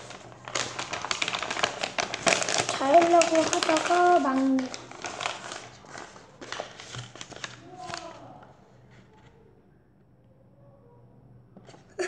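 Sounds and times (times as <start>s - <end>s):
paper crinkling: 0.0s - 9.0s.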